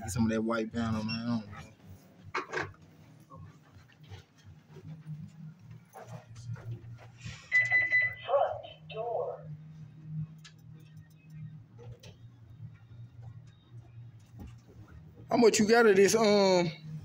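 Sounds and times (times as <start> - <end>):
low hum: 0.0 - 17.0
electronic beep: 7.4 - 8.4.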